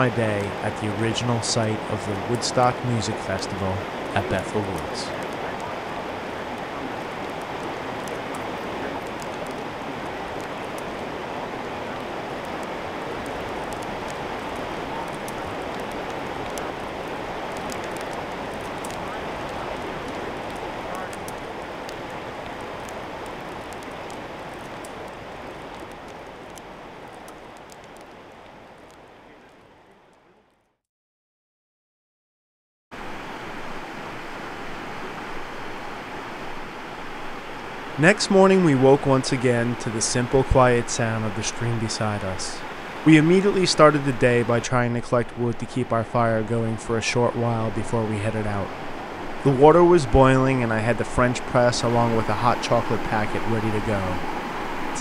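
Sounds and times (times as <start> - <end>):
campfire crackling and popping: 0.0 - 30.6, 33.0 - 55.0.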